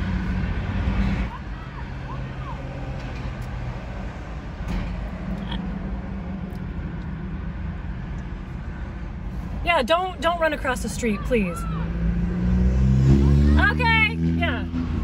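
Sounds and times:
cars passing: 0.0 - 15.0
low engine hum: 0.0 - 15.0.

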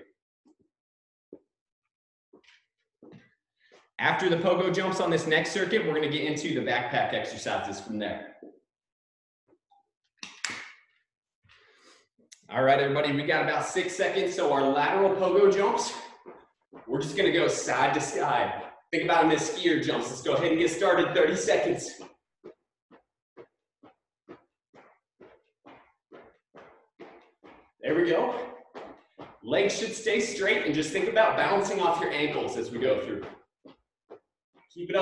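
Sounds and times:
jumps on rubber floor: 14.2 - 35.0.

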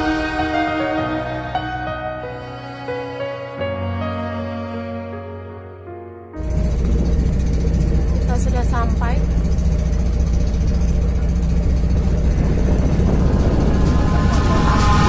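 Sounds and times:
boat engine running: 0.0 - 4.2, 6.4 - 15.0
water noise: 6.4 - 15.0
wind: 6.4 - 15.0.

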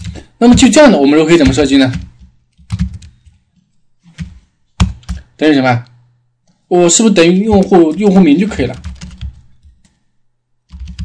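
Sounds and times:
computer keyboard keystrokes: 1.4 - 3.4, 4.2 - 5.3, 7.5 - 10.0, 10.7 - 11.0.

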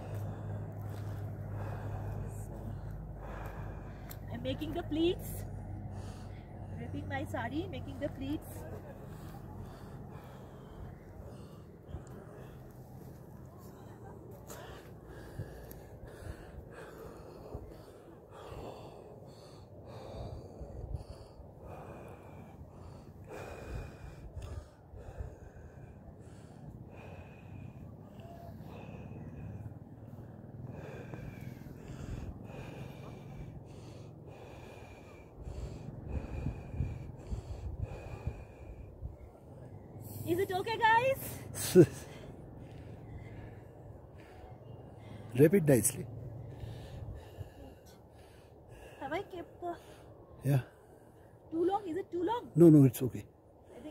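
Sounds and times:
wind rumbling on microphone: 35.6 - 39.4.

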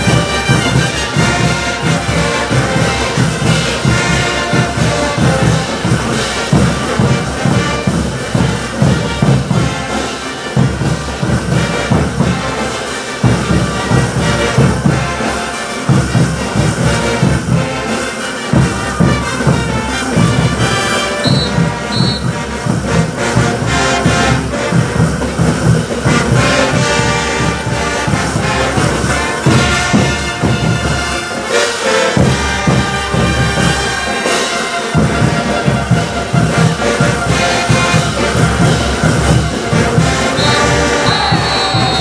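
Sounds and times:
brass band playing: 0.0 - 42.0
pounding low drum beat: 0.0 - 42.0.

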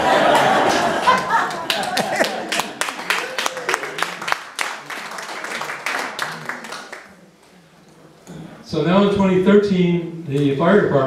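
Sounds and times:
audience laughing: 0.0 - 4.4
scattered clapping: 0.3 - 7.1.

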